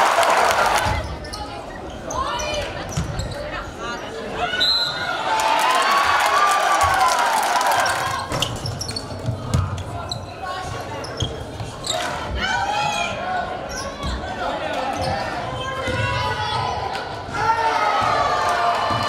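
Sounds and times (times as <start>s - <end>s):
voices echoing in gym: 0.8s - 6.0s, 7.6s - 19.0s.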